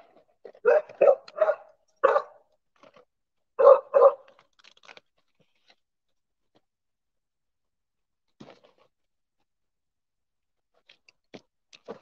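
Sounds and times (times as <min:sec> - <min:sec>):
dog barking: 0:00.6 - 0:02.4, 0:03.6 - 0:04.3.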